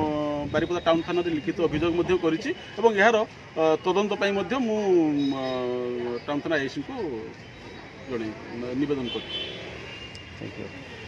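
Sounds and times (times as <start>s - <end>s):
traffic noise: 0.0s - 11.0s
man speaking: 8.1s - 9.4s, 10.3s - 10.9s.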